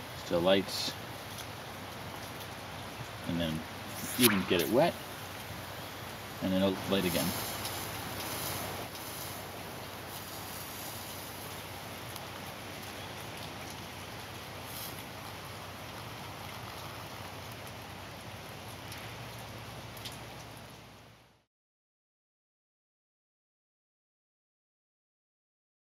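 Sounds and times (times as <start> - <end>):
outdoor background hiss: 0.0 - 21.5.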